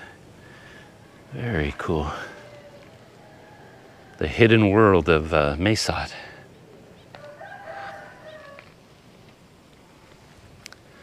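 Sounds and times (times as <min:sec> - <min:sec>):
rooster crowing: 0:02.1 - 0:04.6, 0:07.1 - 0:08.9.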